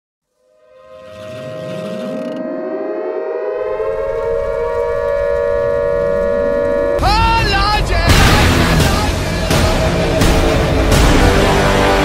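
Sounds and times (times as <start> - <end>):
air-raid siren wailing: 0.4 - 9.7
low rumble: 2.8 - 11.8.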